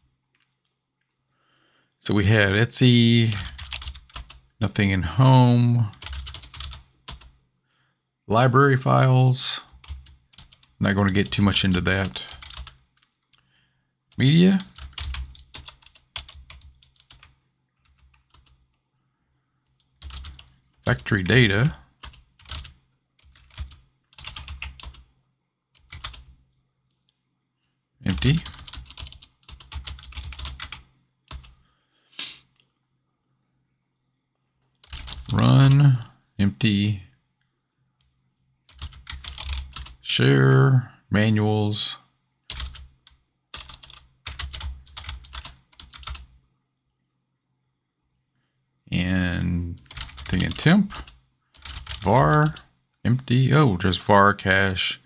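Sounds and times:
typing on computer keyboard: 0:03.3 - 0:04.4, 0:05.9 - 0:07.3, 0:09.7 - 0:13.2, 0:14.2 - 0:18.6, 0:19.8 - 0:25.1, 0:25.8 - 0:26.3, 0:28.1 - 0:31.6, 0:34.8 - 0:35.8, 0:38.7 - 0:40.0, 0:42.5 - 0:46.3, 0:49.8 - 0:52.6.

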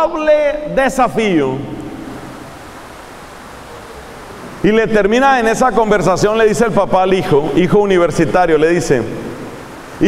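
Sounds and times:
man speaking: 0:00.0 - 0:01.8, 0:04.6 - 0:09.1
room noise hiss: 0:00.0 - 0:10.0.

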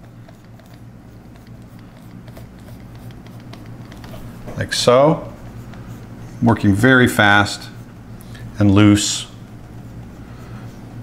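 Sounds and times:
stylus scratching on tablet: 0:00.0 - 0:08.1, 0:08.8 - 0:11.0
steady low hum: 0:00.0 - 0:11.0.

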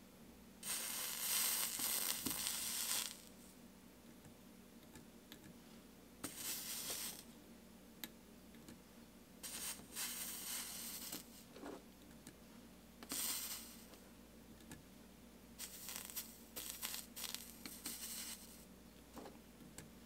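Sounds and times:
solder sizzling under soldering iron: 0:00.6 - 0:03.4, 0:06.2 - 0:07.3, 0:09.4 - 0:11.5, 0:13.0 - 0:14.0, 0:15.6 - 0:18.7.

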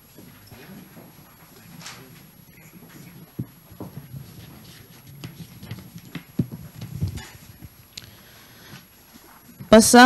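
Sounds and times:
papers being handled: 0:00.0 - 0:09.8
heavy thumps: 0:03.2 - 0:08.9.

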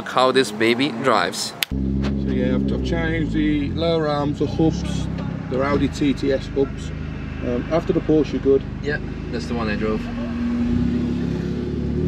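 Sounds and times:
car engine idling: 0:01.7 - 0:12.0.

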